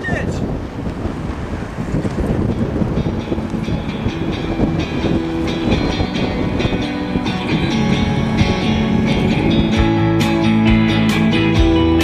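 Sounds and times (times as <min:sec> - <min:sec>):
wheels rolling over asphalt: 0:00.0 - 0:12.0
wind rushing over microphone: 0:00.0 - 0:12.0
guitar music: 0:02.4 - 0:12.0.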